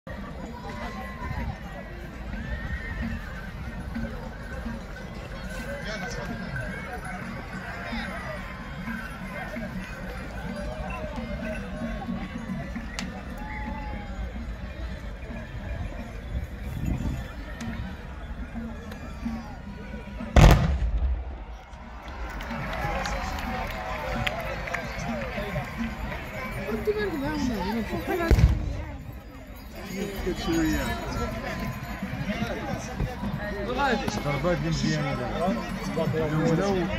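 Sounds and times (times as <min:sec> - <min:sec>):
voices: 0:00.1 - 0:36.9
muskets firing volley: 0:20.4 - 0:21.6.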